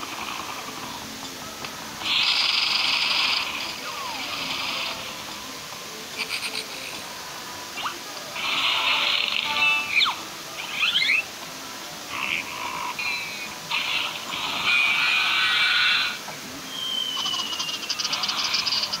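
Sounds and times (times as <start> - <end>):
rasping noise bursts: 2.0 - 7.1, 7.8 - 11.3, 12.1 - 16.3, 17.1 - 19.0
cartoon music: 7.8 - 11.3
whistling slides: 16.6 - 18.9.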